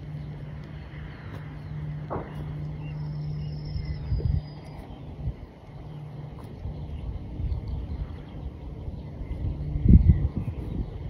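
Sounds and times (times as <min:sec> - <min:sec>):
low engine-like hum: 0:00.0 - 0:11.0.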